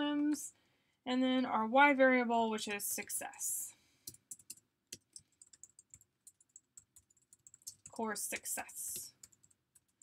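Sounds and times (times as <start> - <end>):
computer keyboard typing: 4.0 - 10.0.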